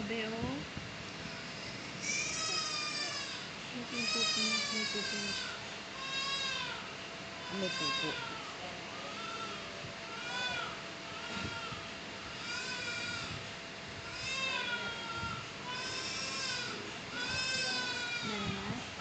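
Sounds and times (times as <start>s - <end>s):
newborn baby crying: 2.0s - 13.3s, 14.1s - 18.4s.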